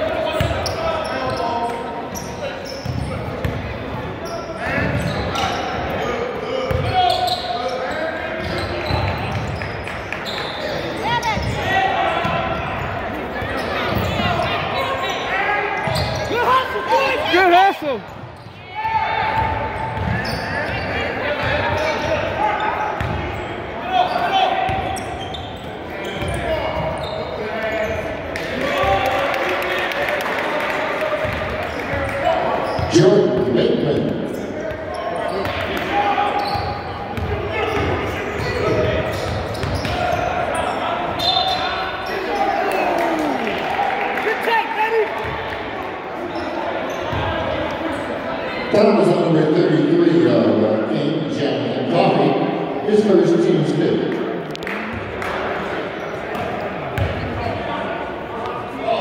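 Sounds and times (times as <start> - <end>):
echoing indistinct voices: 10.7 - 59.0.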